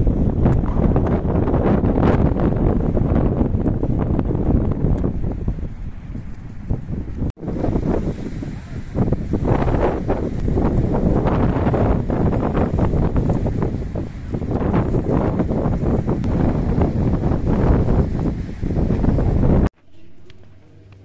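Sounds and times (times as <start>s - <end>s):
wind buffeting microphone: 0.0s - 19.8s.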